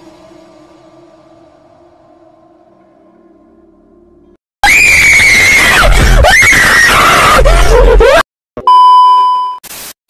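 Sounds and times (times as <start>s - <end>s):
faint eerie music: 0.0s - 6.1s
piercing ghost scream: 4.6s - 7.9s.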